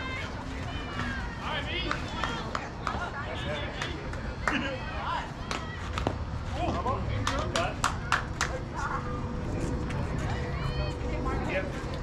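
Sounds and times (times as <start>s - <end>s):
hand claps: 1.8s - 3.1s, 7.2s - 8.6s.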